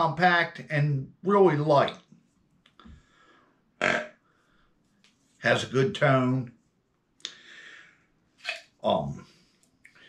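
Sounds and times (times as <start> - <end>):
man speaking: 0.0 - 2.0, 5.4 - 6.6, 8.8 - 9.3.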